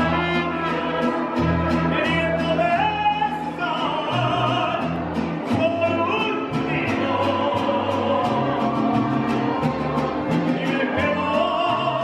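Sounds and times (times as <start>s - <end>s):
man singing: 0.0s - 12.0s
mariachi band playing: 0.0s - 12.0s.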